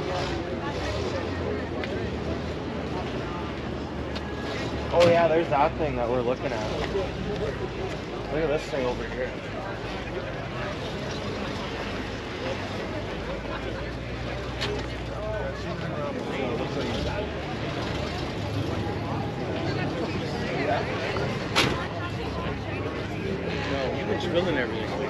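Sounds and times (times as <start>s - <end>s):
people chatting: 0.0s - 25.0s.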